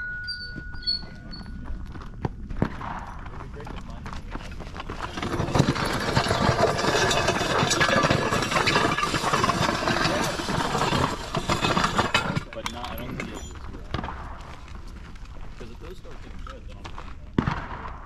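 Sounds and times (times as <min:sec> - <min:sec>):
sled scraping across gravel: 0:03.3 - 0:17.3.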